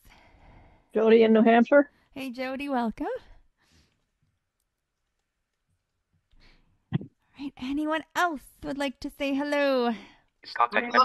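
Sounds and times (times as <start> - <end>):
person speaking: 10.4 - 11.0.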